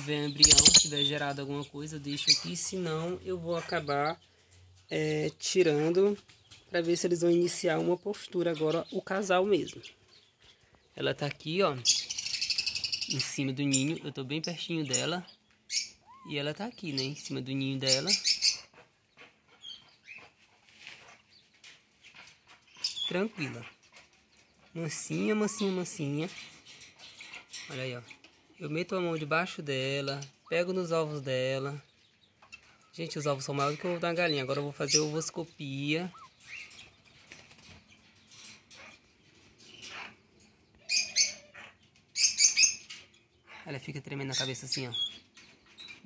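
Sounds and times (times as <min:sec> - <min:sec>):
high sharp bird chirps: 0:00.0 - 0:01.2, 0:36.0 - 0:37.4
high-pitched bird chirps: 0:00.3 - 0:01.2, 0:11.8 - 0:14.0, 0:14.9 - 0:17.2, 0:36.0 - 0:36.9
rustling of straw and feathers: 0:18.1 - 0:32.0, 0:32.6 - 0:39.9.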